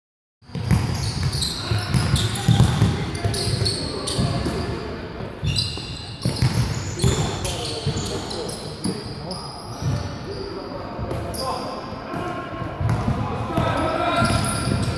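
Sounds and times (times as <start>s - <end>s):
players' voices: 0.7s - 14.9s.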